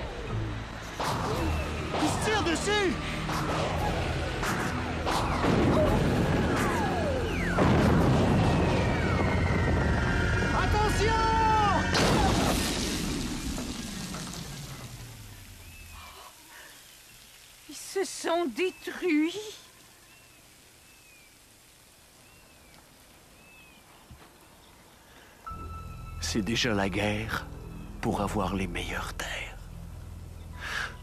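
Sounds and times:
booms and crashes: 5.0 - 10.6, 11.8 - 15.1
loud crash explosion: 5.2 - 10.6, 11.9 - 15.0.

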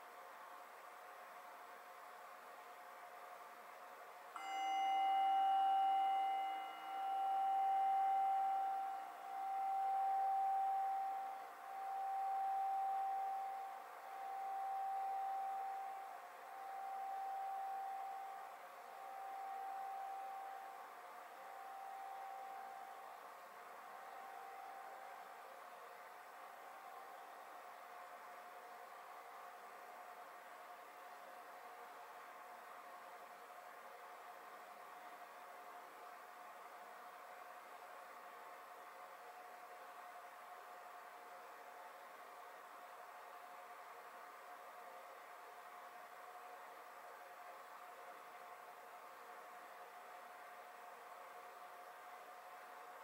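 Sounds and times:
singing bowl ringing: 4.4 - 27.6.

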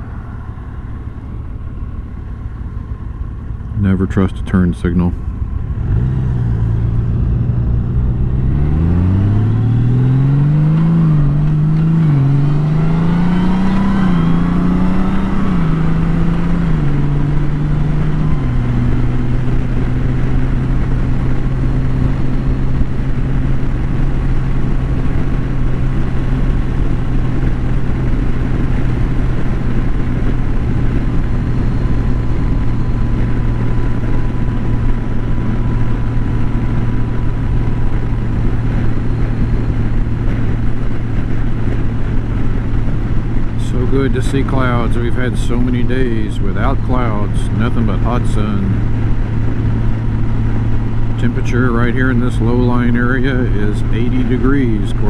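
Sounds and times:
motorcycle engine accelerating: 0.0 - 55.0.

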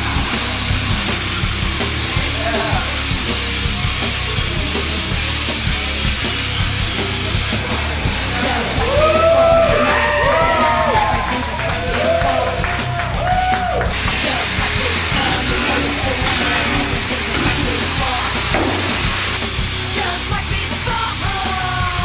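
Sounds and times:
loud heavy rock music: 0.0 - 22.0
voices yelling: 8.3 - 19.1.

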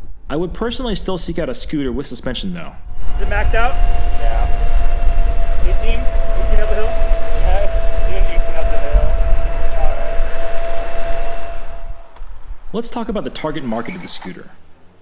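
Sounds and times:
wind buffeting microphone: 2.8 - 13.2
electric scooter motor whine: 3.0 - 12.5.

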